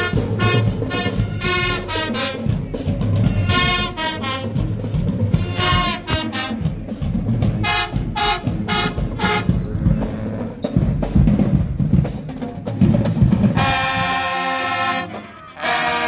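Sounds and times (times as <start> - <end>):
brass hits: 0.0 - 11.4, 13.4 - 16.0
marching band drums: 0.0 - 16.0.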